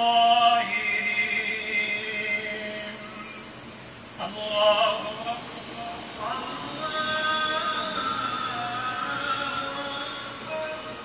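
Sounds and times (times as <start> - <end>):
man chanting prayer: 0.0 - 3.4, 4.2 - 11.0.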